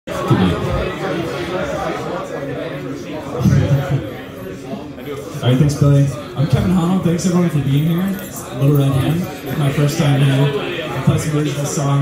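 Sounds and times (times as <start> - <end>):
indistinct chatter of voices: 0.1 - 12.0.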